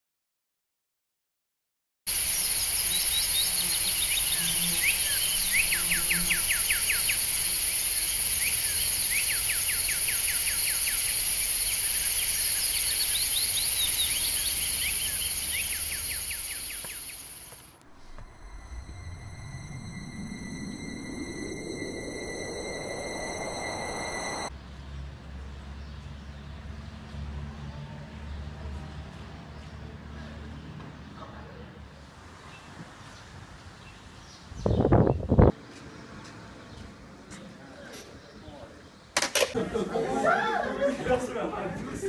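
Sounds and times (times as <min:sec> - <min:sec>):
bird trills: 0:02.1 - 0:24.5
insect chorus: 0:02.1 - 0:24.5
low rising drone: 0:02.1 - 0:24.5.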